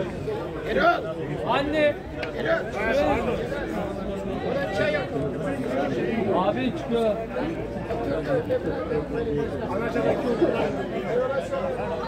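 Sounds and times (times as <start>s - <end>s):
men talking over one another: 0.0s - 12.0s.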